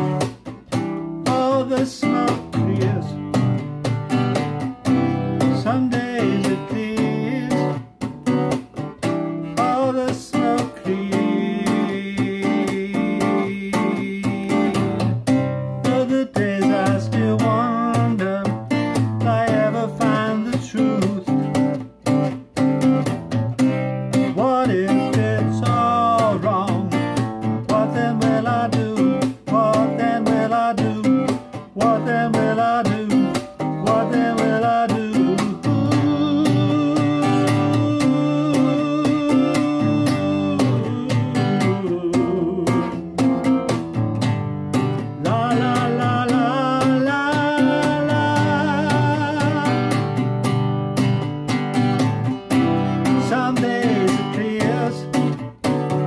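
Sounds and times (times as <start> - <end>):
guitar playing: 0.0 - 56.0.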